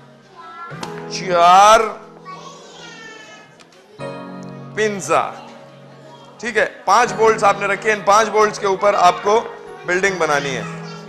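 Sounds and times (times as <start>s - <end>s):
background music with held tone: 0.0s - 3.2s, 4.0s - 11.0s.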